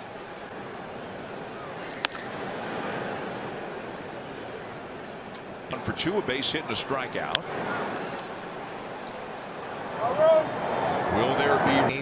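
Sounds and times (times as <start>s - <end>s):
stadium crowd noise: 0.0s - 12.0s.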